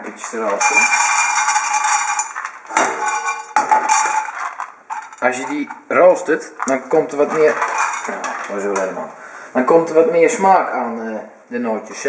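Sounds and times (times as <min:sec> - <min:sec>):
pine nuts rattling in frying pan: 0:00.1 - 0:09.0.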